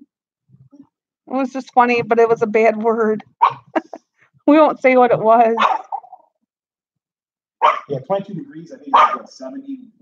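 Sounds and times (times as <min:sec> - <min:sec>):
dog vocalizing: 0:05.6 - 0:06.2, 0:07.6 - 0:07.9, 0:09.0 - 0:09.3.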